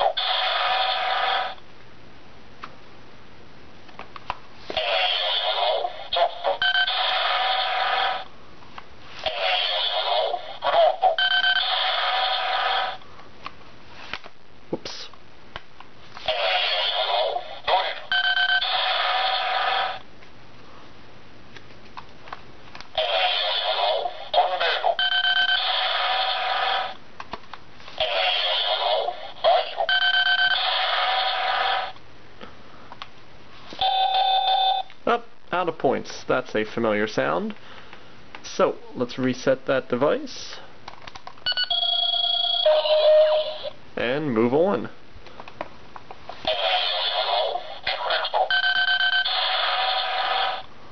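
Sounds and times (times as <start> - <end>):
recorded voice call from toy: 4.8 - 8.0, 9.3 - 11.2, 16.2 - 18.1, 23.0 - 25.1, 28.0 - 30.0, 42.6 - 43.8, 46.5 - 48.6.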